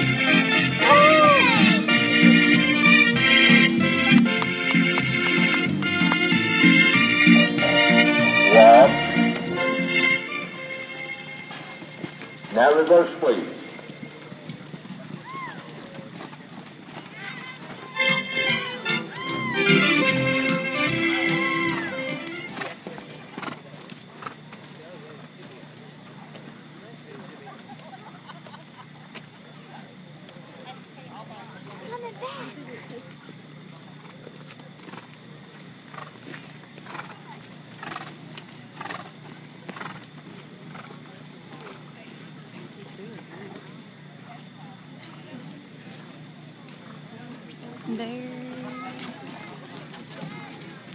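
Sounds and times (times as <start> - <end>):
organ music: 0.0 - 14.1, 17.9 - 22.6
hoofbeats on dirt: 0.0 - 29.5, 31.6 - 50.9
faint crowd chatter: 0.0 - 50.9.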